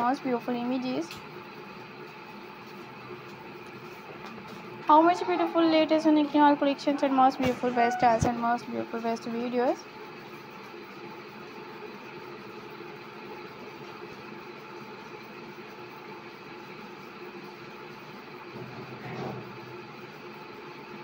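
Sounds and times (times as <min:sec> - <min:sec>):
faint hum: 0:00.0 - 0:21.0.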